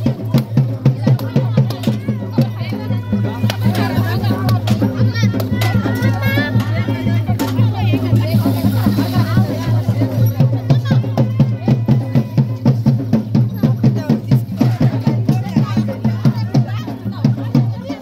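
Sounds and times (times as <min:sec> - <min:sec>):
crowd voices: 0:00.0 - 0:18.0
drums beating quick rhythm: 0:00.0 - 0:18.0.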